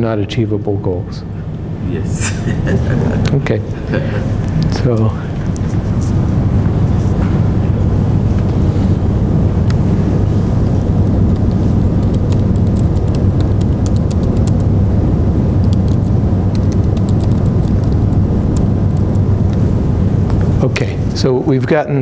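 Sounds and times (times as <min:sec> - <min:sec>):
loud low rumble: 0:01.6 - 0:21.5.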